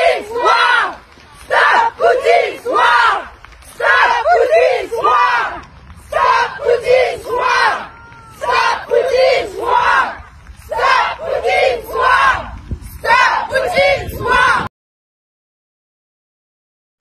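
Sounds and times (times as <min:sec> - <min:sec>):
women shouting slogan in unison: 0:00.0 - 0:14.7.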